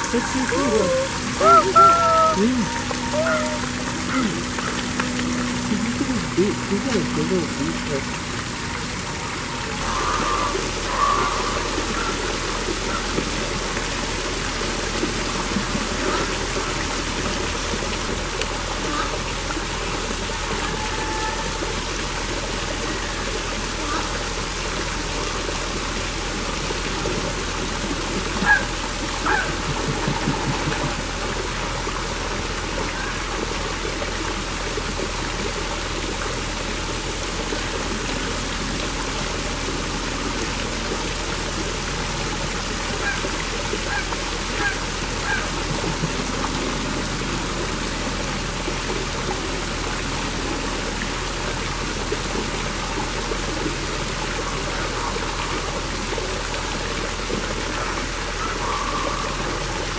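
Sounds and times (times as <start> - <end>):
running water rushing: 0.0 - 59.9.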